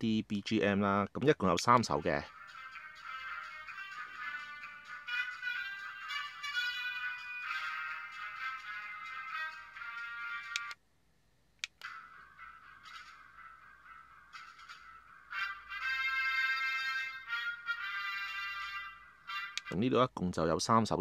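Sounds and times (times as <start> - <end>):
toy speaker background music: 1.7 - 10.8, 11.6 - 19.8.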